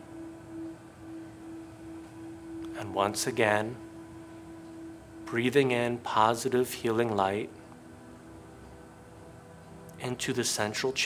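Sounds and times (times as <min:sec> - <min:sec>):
steady humming tone: 0:00.0 - 0:11.0.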